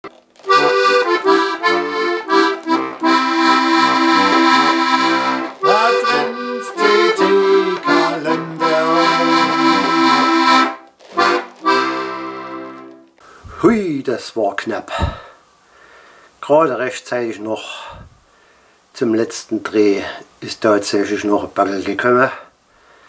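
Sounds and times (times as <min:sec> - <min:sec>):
accordion music: 0:00.0 - 0:13.2.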